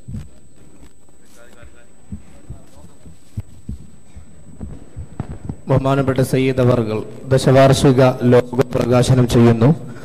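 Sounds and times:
faint high-pitched whine: 0:00.0 - 0:10.0
dull low thumps: 0:02.0 - 0:05.8.

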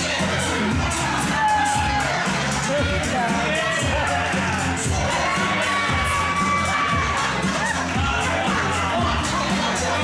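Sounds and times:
children shouting and cheering: 0:00.0 - 0:10.0
entrance music with steady beat: 0:00.0 - 0:10.0
long high shout: 0:05.1 - 0:08.8.

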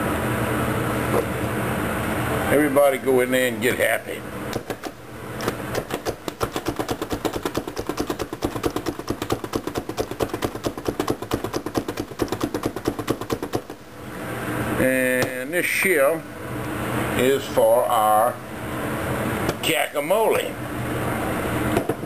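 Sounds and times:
food chopper blades clacking: 0:04.5 - 0:13.8.

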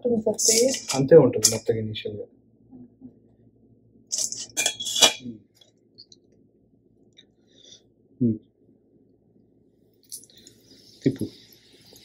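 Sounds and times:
metal skimmer clanging on steel bowl: 0:00.5 - 0:01.6.

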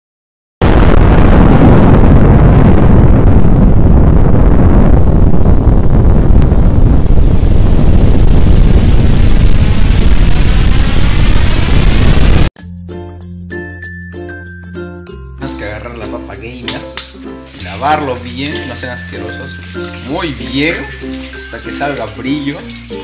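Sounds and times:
explosion blast with heavy rumble: 0:00.6 - 0:12.5.

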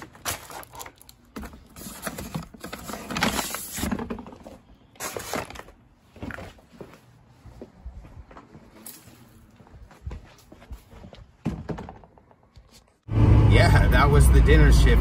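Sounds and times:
paper bags crinkling: 0:00.0 - 0:04.4.

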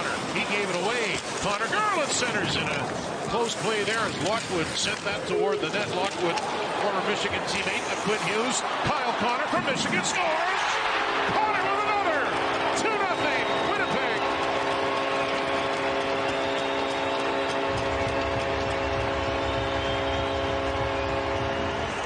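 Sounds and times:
crowd cheering: 0:03.3 - 0:22.0
goal horn chord: 0:14.2 - 0:22.0.

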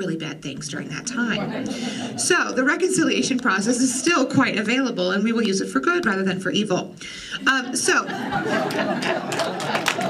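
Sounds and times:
audience laughing and murmuring: 0:01.2 - 0:04.3, 0:07.3 - 0:10.0
people clapping: 0:08.3 - 0:10.0.

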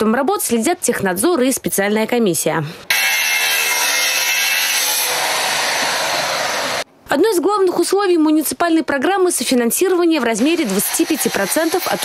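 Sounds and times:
angle grinder cutting steel: 0:02.9 - 0:06.9, 0:10.4 - 0:12.0.

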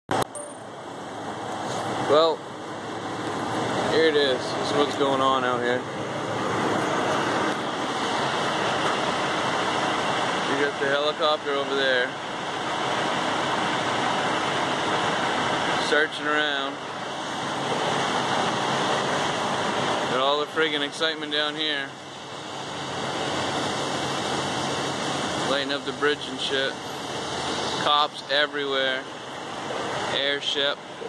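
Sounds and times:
engine droning: 0:00.1 - 0:31.0
traffic noise: 0:00.1 - 0:31.0.

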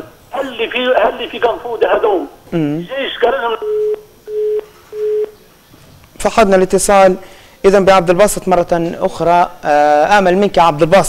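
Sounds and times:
telephone busy tone beeps: 0:03.6 - 0:05.4.

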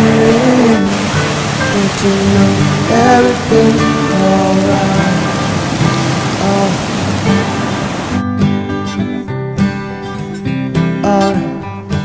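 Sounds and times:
song with singing and instruments: 0:00.0 - 0:07.6, 0:10.5 - 0:12.0
surf breaking: 0:00.0 - 0:08.2.

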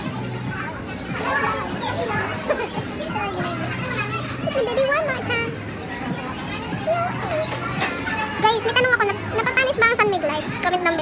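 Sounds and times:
restaurant chatter: 0:00.0 - 0:11.0
voices talking at a table: 0:00.0 - 0:11.0.

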